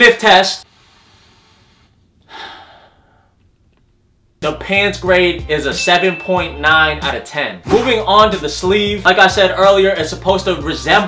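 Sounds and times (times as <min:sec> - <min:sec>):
person sniffing through nose: 0:00.7 - 0:02.9.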